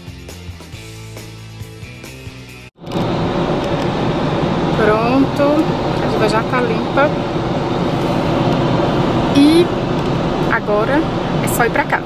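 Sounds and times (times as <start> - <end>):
car cabin engine and road noise: 2.8 - 12.0.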